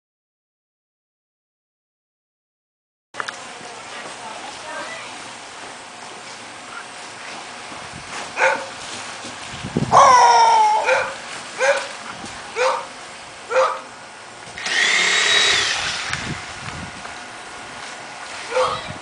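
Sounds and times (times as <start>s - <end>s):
dog barking: 8.4s - 8.7s, 10.8s - 11.9s, 12.6s - 12.9s, 13.5s - 13.9s, 18.5s - 18.9s
dog whining: 18.5s - 19.0s.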